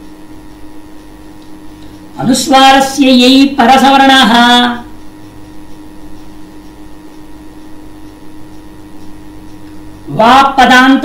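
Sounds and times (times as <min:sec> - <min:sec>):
steady background hum with hiss: 0:00.0 - 0:11.0.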